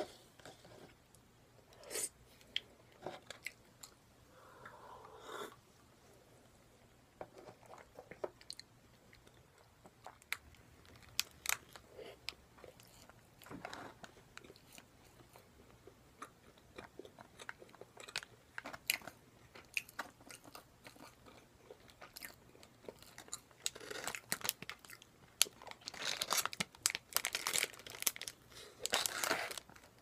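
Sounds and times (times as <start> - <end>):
plastic packaging crackling: 25.4 - 30.0.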